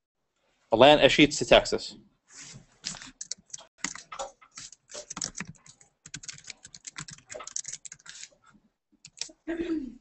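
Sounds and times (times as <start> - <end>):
typing on computer keyboard: 2.9 - 8.4, 9.0 - 9.4.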